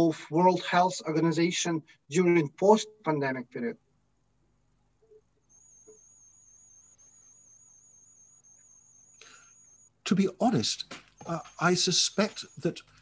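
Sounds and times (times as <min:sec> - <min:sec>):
faint high-pitched whine: 0:00.2 - 0:13.0.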